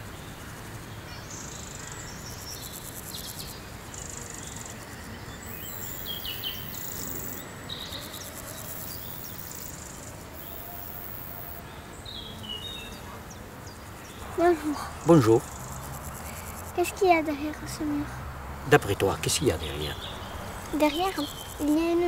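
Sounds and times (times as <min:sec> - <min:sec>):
insects chirping: 0:00.0 - 0:22.0
low background noise: 0:00.0 - 0:22.0.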